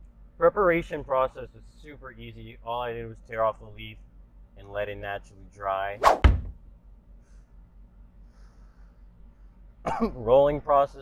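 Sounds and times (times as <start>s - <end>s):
quick thumps: 6.0s - 6.7s.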